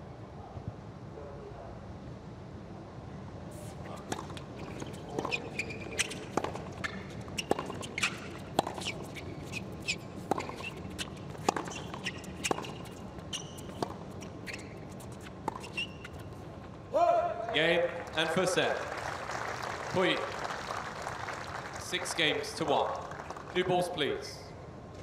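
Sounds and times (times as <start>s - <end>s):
shoe squeaks: 3.5s - 16.8s
tennis ball bouncing: 3.7s - 16.8s
tennis ball struck by racquets: 3.8s - 16.5s.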